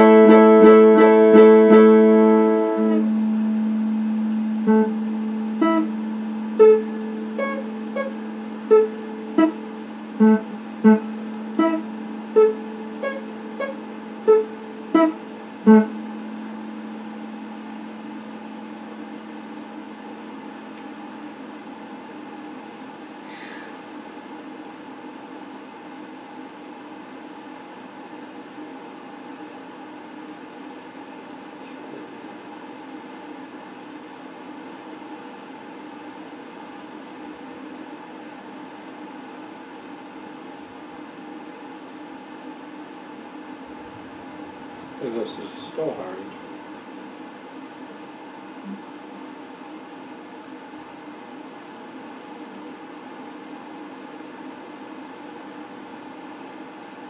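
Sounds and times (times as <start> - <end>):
electric guitar chord ringing: 0.0 - 21.9.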